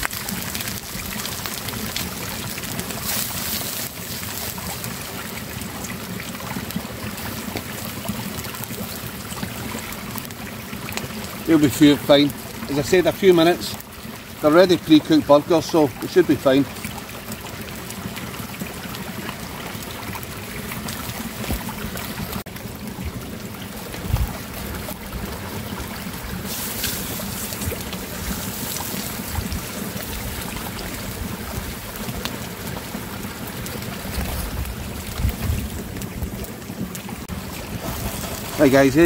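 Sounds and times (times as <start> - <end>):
burgers sizzling in a pan: 0.0 - 10.4, 26.1 - 36.4
fire crackling: 0.0 - 39.0.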